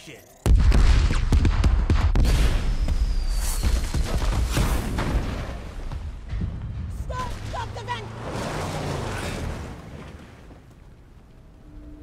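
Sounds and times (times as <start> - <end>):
sharp cracks and debris impacts: 0.5 - 7.6.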